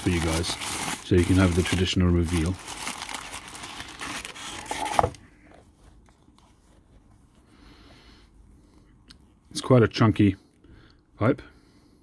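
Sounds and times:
tissue paper crinkling: 0.0 - 5.1.

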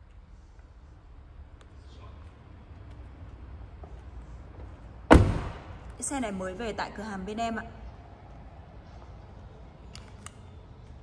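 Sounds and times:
car door slamming: 5.1 - 5.8.

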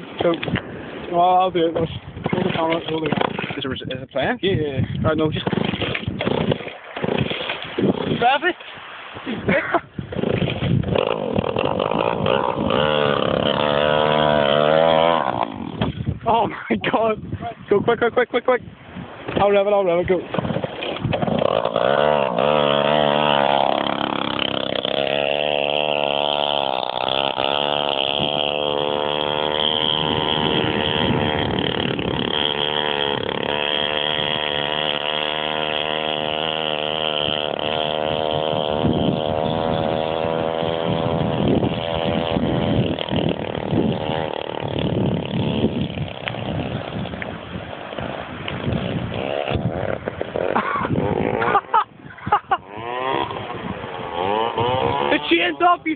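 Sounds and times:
scooter engine revving: 10.9 - 15.9, 20.8 - 47.0, 48.6 - 55.8.

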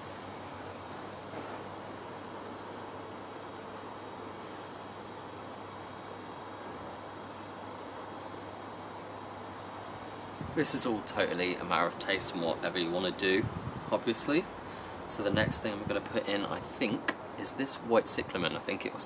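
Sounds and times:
steady hiss: 0.0 - 19.0.

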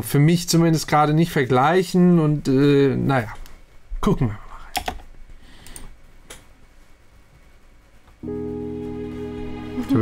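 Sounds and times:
computer mouse click: 5.6 - 6.4.

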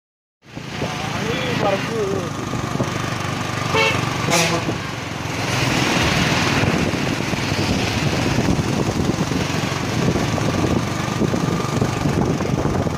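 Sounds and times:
wind and road noise: 0.4 - 12.9
motorcycle engines running: 0.5 - 12.9.

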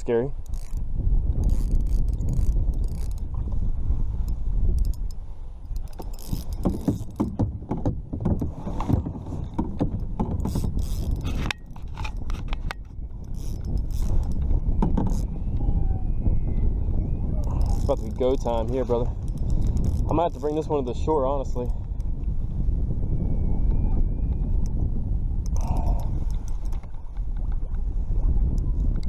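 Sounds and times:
wind buffeting microphone: 0.0 - 29.0
fishing reel clicking: 0.4 - 3.3, 4.2 - 7.2, 10.5 - 15.3, 17.4 - 20.7, 25.4 - 26.8
rod knocking against kayak: 5.7 - 12.9, 13.6 - 15.2.

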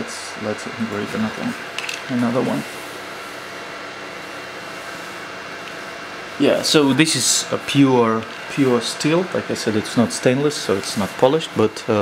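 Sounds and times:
laser engraver fan and motors whirring: 0.0 - 12.0.

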